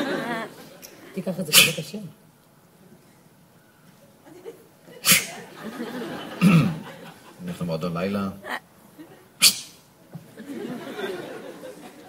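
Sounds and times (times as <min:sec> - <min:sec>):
hissing burst of breath: 0:05.0 - 0:05.4.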